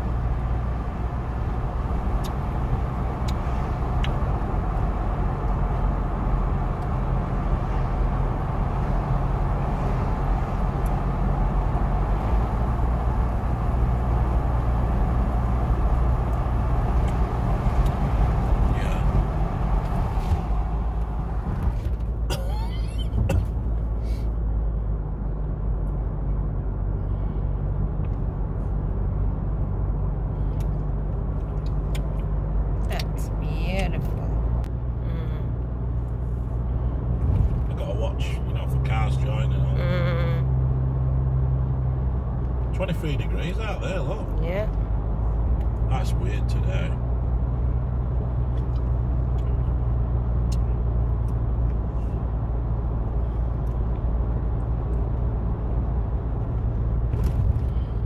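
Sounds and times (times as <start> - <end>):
car interior driving drone: 0.0 - 58.0
road and tyre rush: 0.0 - 58.0.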